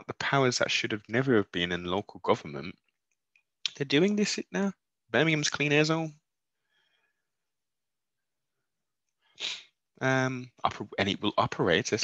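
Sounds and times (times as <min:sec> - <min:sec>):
man speaking: 0:00.0 - 0:02.7, 0:03.7 - 0:06.2, 0:09.4 - 0:12.0.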